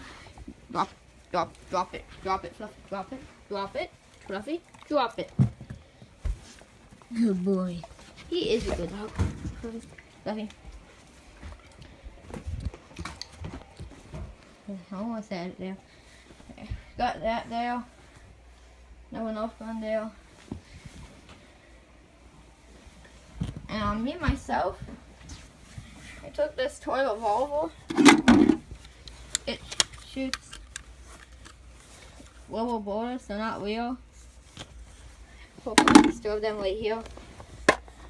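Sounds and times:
phone handling knocks and rustles: 0:27.9 - 0:28.7, 0:35.8 - 0:36.2.

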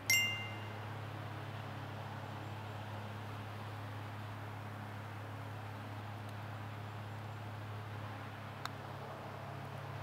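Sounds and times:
low steady hum: 0:00.0 - 0:10.0
bright metallic ding: 0:00.1 - 0:00.8.

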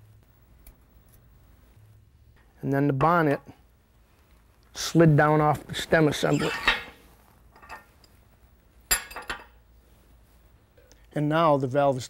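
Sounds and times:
metal valve parts clinking: 0:06.2 - 0:08.2, 0:08.9 - 0:09.6.

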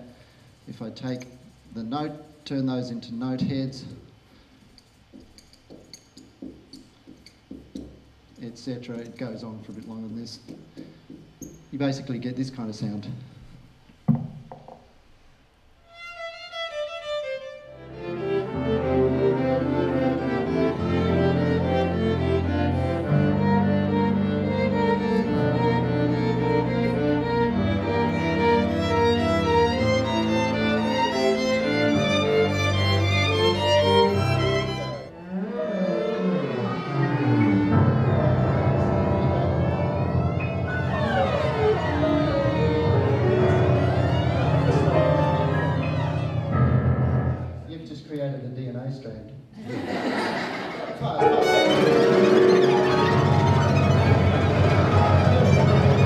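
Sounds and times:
string ensemble playing: 0:16.1 - 0:47.6, 0:49.8 - 0:56.0.

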